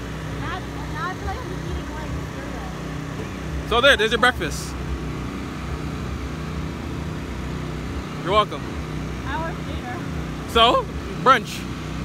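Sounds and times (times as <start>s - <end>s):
low engine hum: 0.0s - 12.0s
outdoor background noise: 0.0s - 12.0s.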